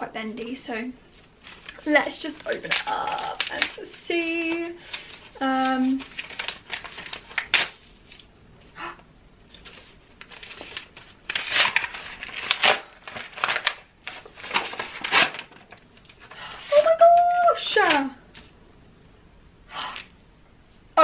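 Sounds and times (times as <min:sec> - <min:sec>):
wrapping paper tearing and crinkling: 0:01.2 - 0:08.3, 0:09.5 - 0:18.5.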